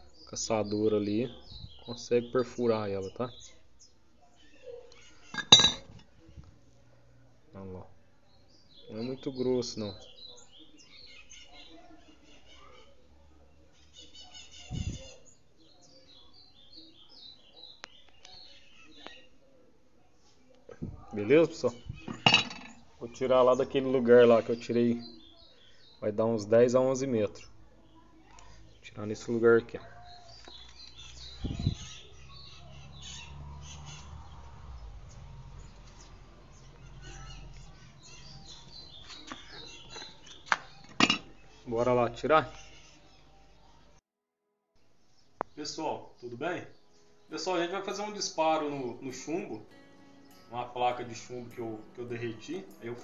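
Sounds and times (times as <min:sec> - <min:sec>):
small bird singing: 0:00.0 - 0:06.4, 0:07.5 - 0:19.8, 0:20.7 - 0:44.0, 0:44.8 - 0:53.0.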